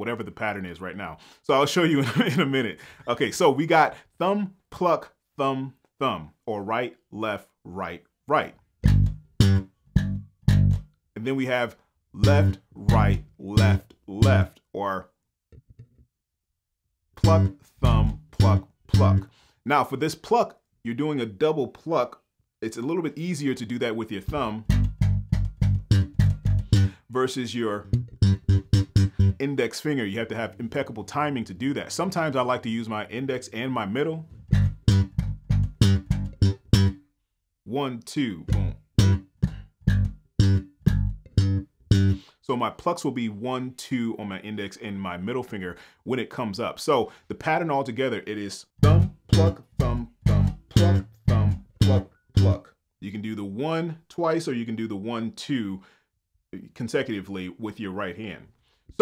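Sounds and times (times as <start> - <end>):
slap bass notes: 8.8 - 10.9, 12.2 - 14.6, 17.2 - 19.3, 24.2 - 29.4, 34.4 - 37.0, 38.4 - 42.3, 48.8 - 52.7.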